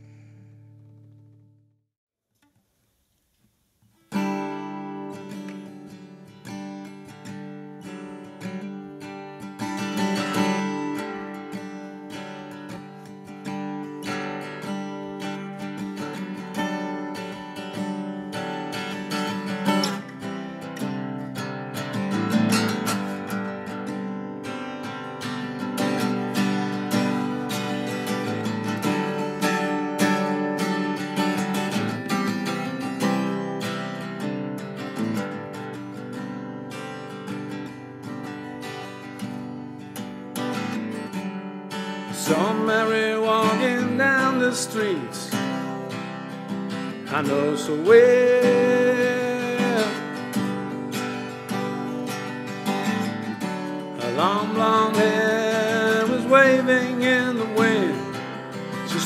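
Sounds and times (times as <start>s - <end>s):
steel-string acoustic guitar: 0.0s - 1.6s, 3.8s - 59.0s.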